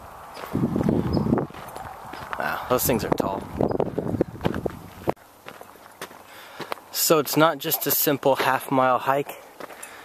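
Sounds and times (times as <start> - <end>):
footsteps on dirt trail: 0.3 - 10.0.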